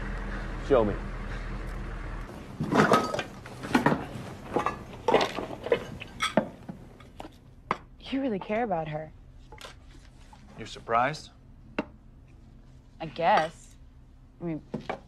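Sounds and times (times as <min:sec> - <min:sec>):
low hum: 0:00.0 - 0:09.5.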